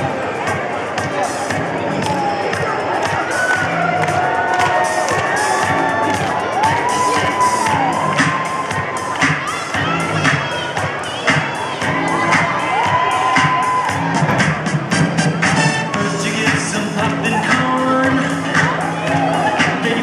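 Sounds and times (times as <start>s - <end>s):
children shouting and cheering: 0.0s - 20.0s.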